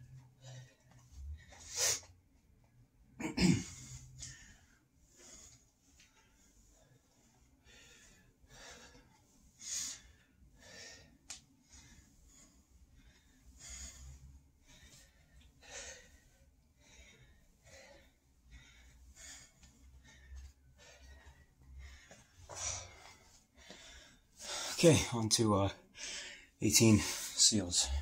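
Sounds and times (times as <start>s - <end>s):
man breathing hard: 3.7s - 25.2s, 25.8s - 28.0s.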